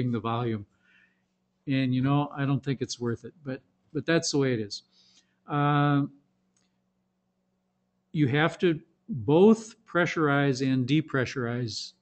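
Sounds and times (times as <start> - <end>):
man saying uh: 0.0 - 0.6, 1.7 - 4.8, 5.5 - 6.1, 8.2 - 11.9
faint low hum: 0.0 - 12.0.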